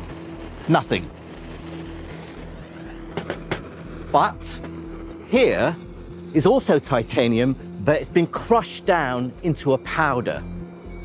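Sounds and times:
gas blowtorch hissing: 0:00.0 - 0:11.0.

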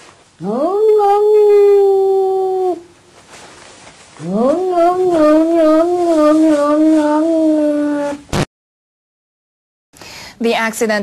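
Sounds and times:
animal howling: 0:00.4 - 0:02.8, 0:04.2 - 0:08.2.

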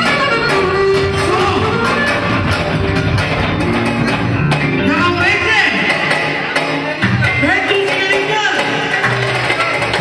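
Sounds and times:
live band dance music: 0:00.0 - 0:10.0.

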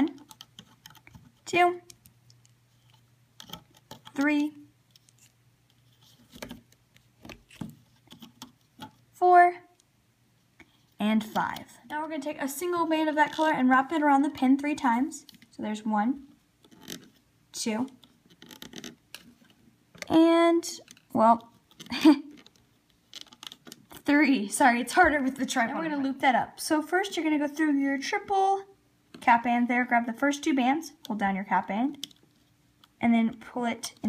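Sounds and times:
faint steady hum: 0:00.0 - 0:34.0
rubber band scraping on plastic: 0:17.9 - 0:20.2.

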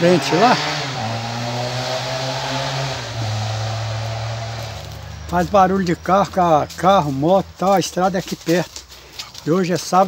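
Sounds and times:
vehicle engine passing: 0:00.0 - 0:08.2.

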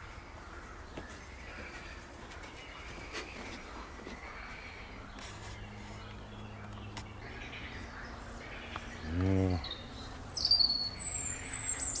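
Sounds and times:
distant birds calling: 0:00.0 - 0:12.0.

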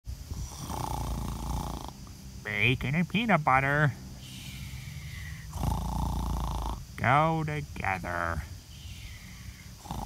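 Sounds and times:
low rattling snore: 0:00.2 - 0:02.4, 0:04.2 - 0:07.0, 0:09.4 - 0:10.0
person talking: 0:02.4 - 0:04.0, 0:07.0 - 0:08.6.

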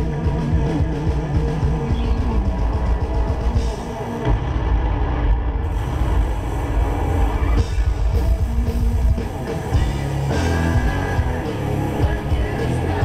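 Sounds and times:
rock band playing live: 0:00.0 - 0:04.6, 0:05.7 - 0:13.0.

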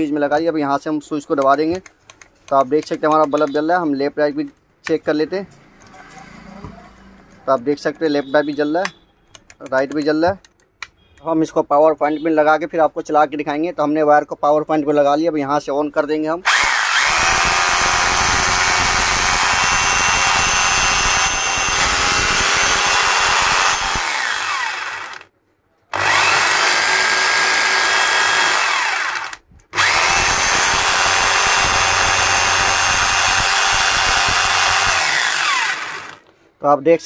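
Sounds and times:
rotary hammer whining: 0:16.5 - 0:25.3, 0:25.9 - 0:36.3.

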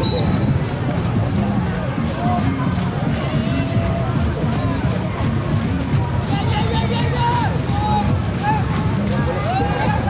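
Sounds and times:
many voices talking and calling: 0:00.0 - 0:10.0.

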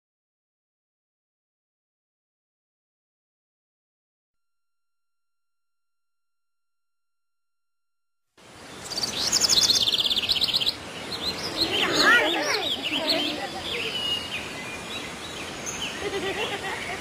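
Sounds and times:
birdsong trills and chirps: 0:08.4 - 0:17.0.

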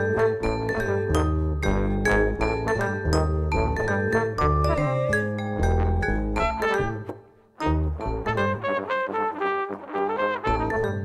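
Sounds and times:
vibraphone played with mallets: 0:00.0 - 0:07.1
electric bass guitar notes: 0:00.0 - 0:08.6.

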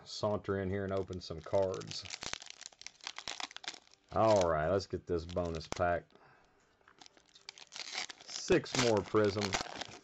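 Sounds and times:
plastic foil wrapper crinkling: 0:00.8 - 0:06.1, 0:06.9 - 0:10.0.

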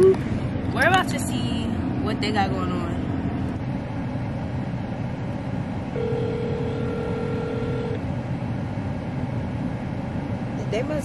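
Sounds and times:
car cabin low rumble: 0:00.0 - 0:11.0
telephone ringback tone: 0:06.0 - 0:08.0.

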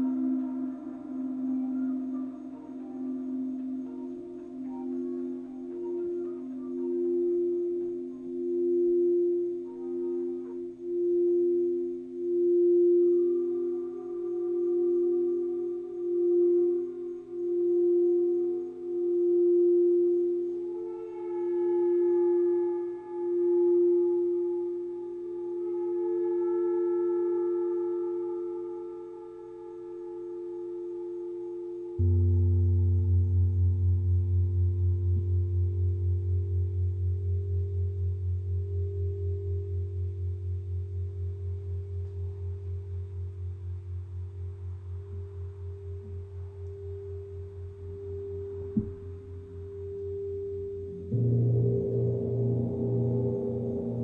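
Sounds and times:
deep struck bowl tone: 0:00.0 - 0:54.0
singing bowls ringing: 0:00.0 - 0:54.0.

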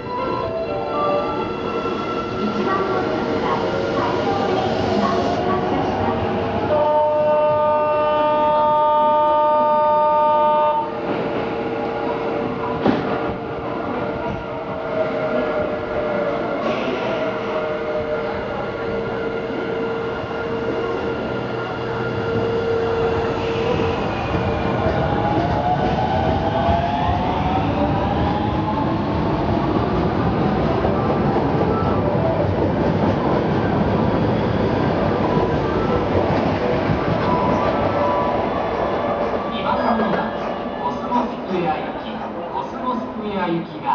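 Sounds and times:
electric train running on rails: 0:00.0 - 0:43.2.

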